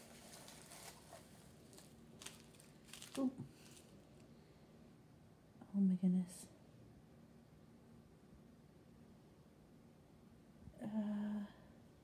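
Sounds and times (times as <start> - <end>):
paper shred crinkling: 0.0 - 4.1.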